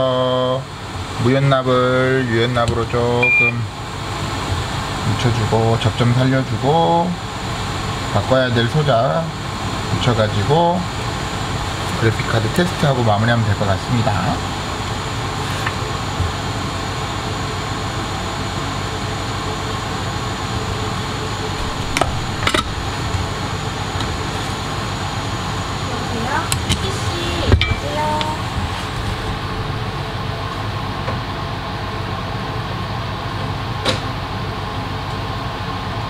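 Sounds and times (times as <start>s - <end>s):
fans whirring: 0.0s - 36.0s.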